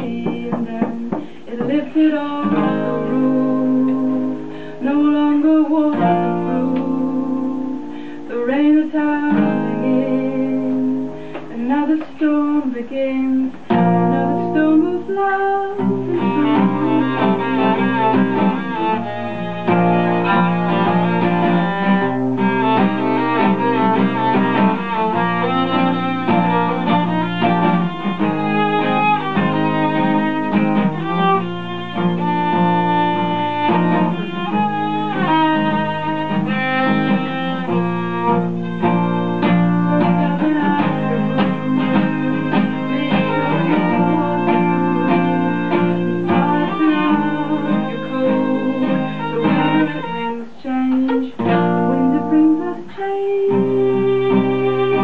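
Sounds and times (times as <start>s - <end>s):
bowed violin melody: 0.0s - 12.9s, 13.7s - 55.0s
strummed acoustic guitar: 0.0s - 55.0s.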